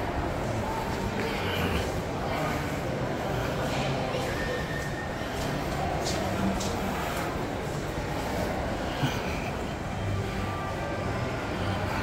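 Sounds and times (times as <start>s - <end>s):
low rumble and hubbub of mall: 0.0s - 12.0s.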